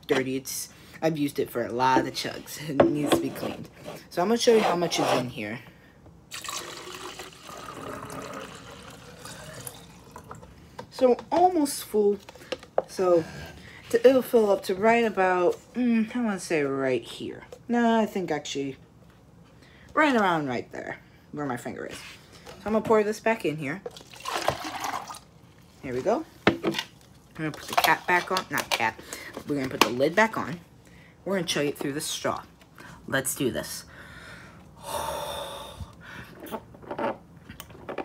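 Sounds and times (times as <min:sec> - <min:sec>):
drink pouring into plastic cup: 0:06.3 - 0:10.5, 0:23.9 - 0:25.3.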